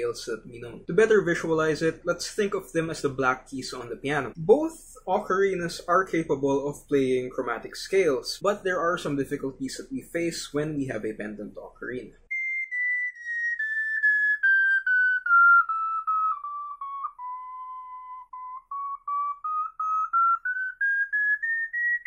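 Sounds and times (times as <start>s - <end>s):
ocarina playing a scale: 12.3s - 22.0s.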